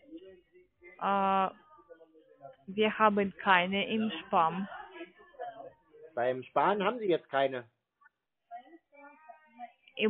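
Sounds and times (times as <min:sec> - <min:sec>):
faint voice on phone line: 0:04.8 - 0:07.6.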